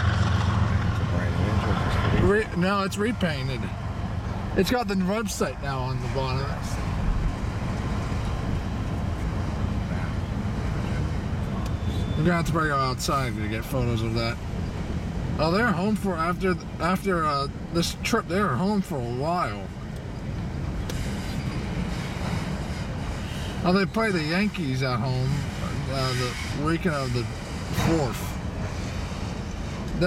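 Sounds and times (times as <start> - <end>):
train wheels on rail: 20.0 - 23.7
freight train rumbling past: 20.2 - 30.0.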